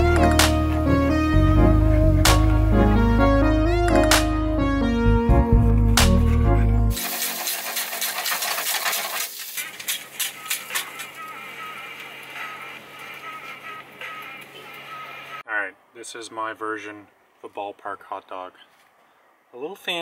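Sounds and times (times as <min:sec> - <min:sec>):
music with heavy beat: 0:00.0 - 0:04.8, 0:05.4 - 0:07.1.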